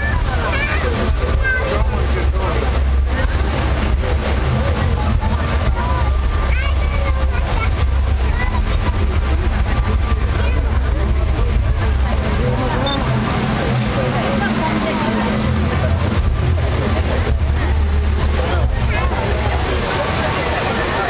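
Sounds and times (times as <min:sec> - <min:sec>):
deep low rumble: 0:00.0 - 0:20.4
crowd chatter: 0:00.0 - 0:21.0
fountain water splashing: 0:00.0 - 0:21.0.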